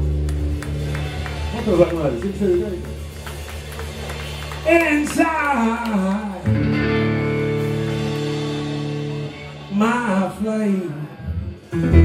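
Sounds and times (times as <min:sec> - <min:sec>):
bass line: 0:00.0 - 0:12.0
electric guitar: 0:00.0 - 0:12.0.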